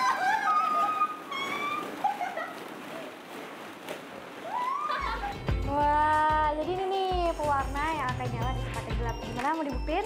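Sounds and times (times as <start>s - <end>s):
women squealing and laughing: 0.0s - 2.8s, 4.4s - 5.5s.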